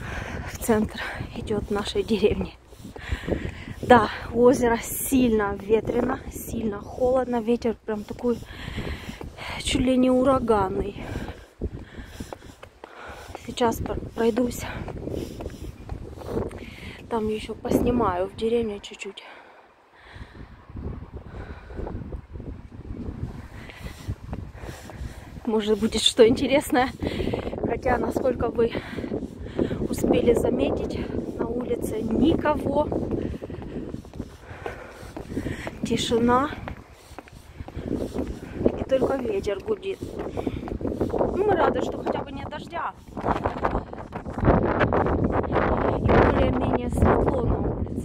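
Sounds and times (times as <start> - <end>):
gusty wind on microphone: 0.0 - 18.9, 19.9 - 48.0.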